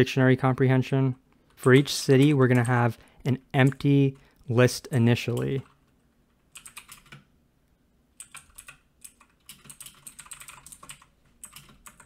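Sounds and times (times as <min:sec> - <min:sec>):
computer keyboard typing: 0:01.5 - 0:02.8, 0:05.3 - 0:07.3, 0:08.2 - 0:12.0.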